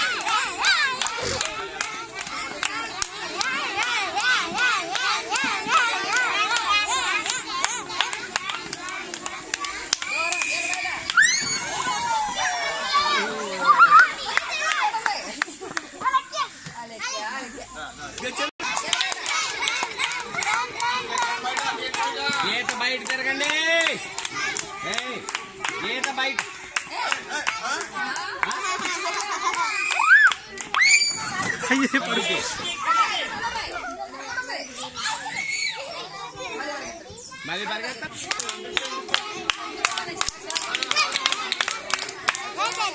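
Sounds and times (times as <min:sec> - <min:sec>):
children talking and shouting: 0:00.0 - 0:42.9
young children shouting and squealing: 0:03.4 - 0:15.1, 0:28.4 - 0:37.6.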